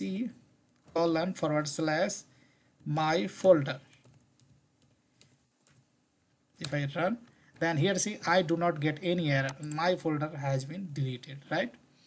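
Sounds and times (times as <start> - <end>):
keyboard typing: 0.7 - 1.1, 3.8 - 5.9.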